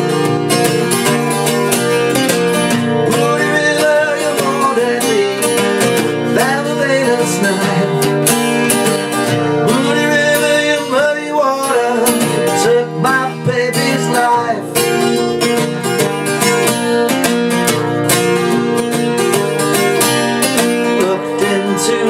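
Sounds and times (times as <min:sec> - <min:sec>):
acoustic guitar strumming: 0:00.0 - 0:22.0.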